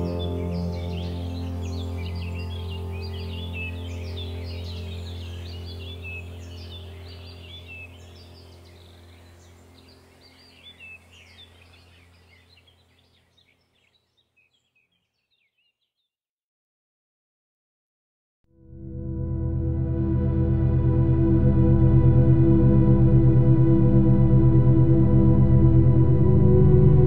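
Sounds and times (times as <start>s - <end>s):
calm ambient music with drone: 0.0s - 12.9s, 18.5s - 27.0s
birds chirping: 0.0s - 16.1s.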